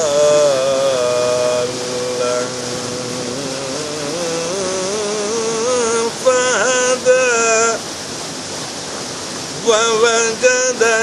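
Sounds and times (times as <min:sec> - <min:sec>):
man chanting melodic recitation: 0:00.0 - 0:07.9, 0:09.6 - 0:11.0
waterfall and river rushing: 0:00.0 - 0:11.0.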